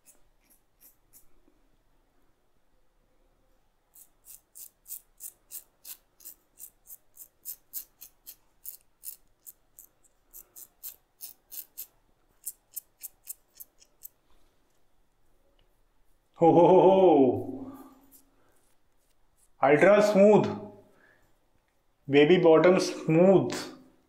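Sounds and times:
razor scraping stubble: 0.0s - 1.4s, 3.9s - 14.2s.

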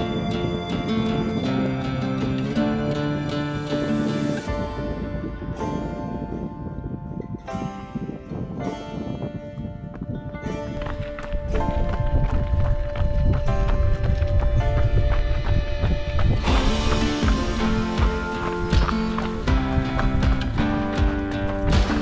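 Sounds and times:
instrumental background music: 0.0s - 22.0s
running footfalls on gravel: 10.0s - 22.0s.

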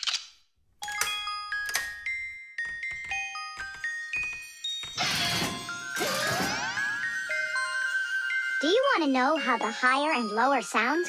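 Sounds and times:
music box tinkling tune: 0.8s - 6.0s, 6.8s - 11.0s.

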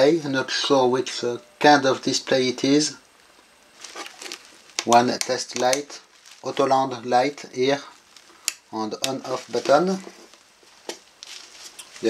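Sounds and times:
light handling rustling: 3.2s - 6.8s, 7.8s - 12.0s.

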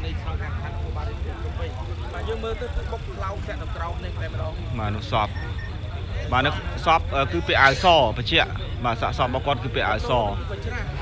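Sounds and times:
people talking: 0.0s - 11.0s
traffic rumble: 0.0s - 11.0s.

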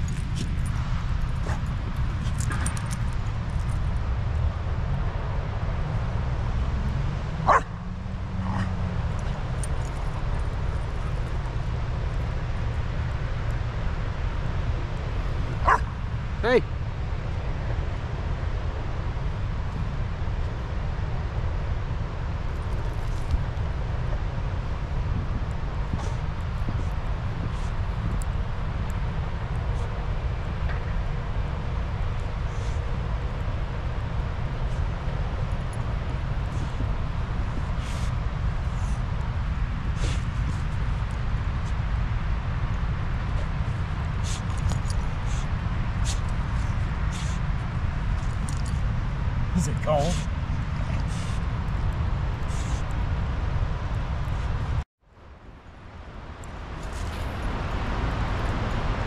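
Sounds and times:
dog barking: 7.4s - 8.8s, 15.6s - 15.9s.

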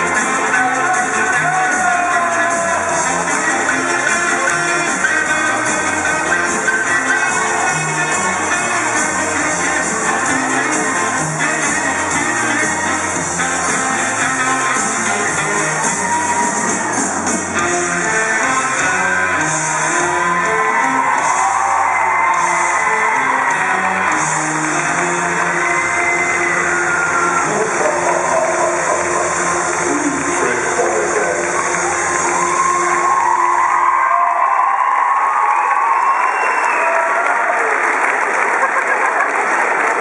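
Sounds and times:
recorded dance music: 0.0s - 35.1s
crowd clapping: 0.0s - 40.0s
crowd of children cheering: 0.0s - 40.0s.

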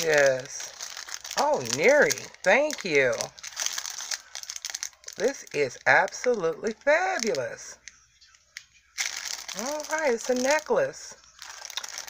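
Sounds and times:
plastic bag crinkling: 0.0s - 7.9s, 8.9s - 12.0s.

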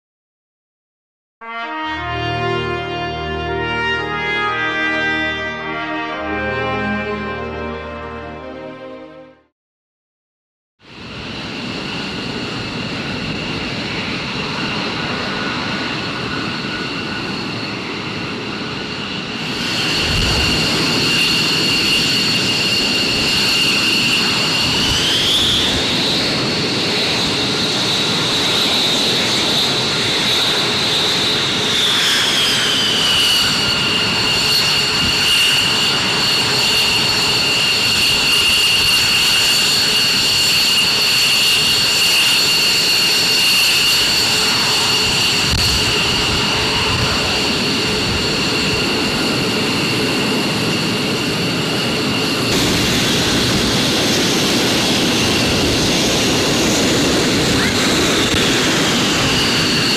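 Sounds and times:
jet engines whining and roaring: 1.5s - 9.5s, 10.8s - 59.9s.

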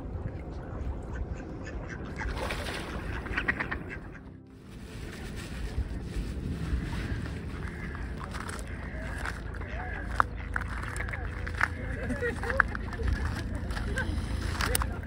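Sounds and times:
ducks quacking: 1.0s - 4.4s, 6.6s - 15.0s.

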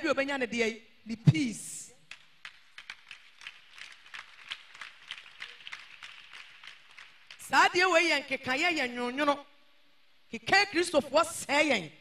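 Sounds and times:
quiet hiss: 0.8s - 12.0s.

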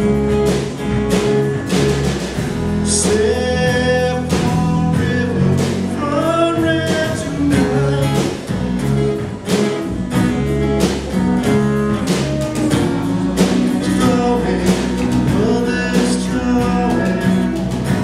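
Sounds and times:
drum kit steady beat: 0.0s - 18.0s
electric guitar: 0.0s - 18.0s
strummed acoustic guitar: 0.0s - 18.0s.

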